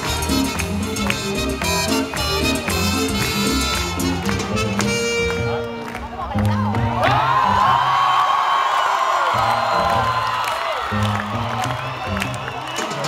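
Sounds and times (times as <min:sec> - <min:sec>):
live salsa band playing: 0:00.0 - 0:07.4, 0:10.9 - 0:13.0
crowd cheering and whooping: 0:06.1 - 0:13.0.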